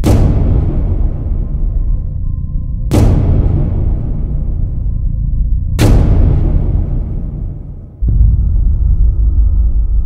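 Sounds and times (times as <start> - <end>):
deep hit: 0.0 - 10.0
low rumbling drone: 0.0 - 10.0.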